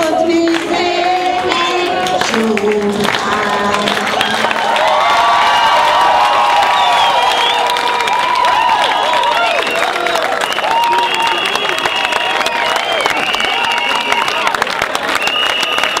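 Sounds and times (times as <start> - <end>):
women singing together: 0.0 - 4.6
crowd applauding: 0.0 - 16.0
crowd cheering and whooping: 3.5 - 16.0.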